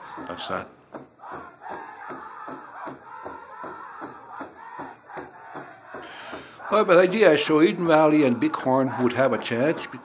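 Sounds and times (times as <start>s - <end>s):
voices chanting together: 0.0s - 10.0s
steady beat: 0.2s - 10.0s.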